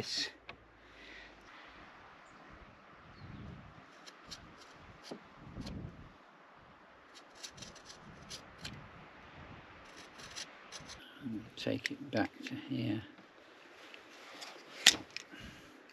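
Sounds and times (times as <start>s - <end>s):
knife rubbing through rope: 7.2s - 8.6s, 9.9s - 11.0s.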